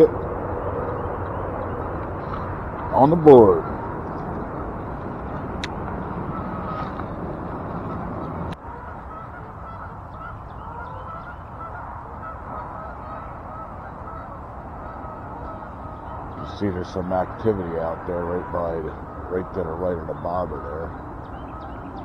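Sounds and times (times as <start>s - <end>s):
geese honking: 0.0s - 22.0s.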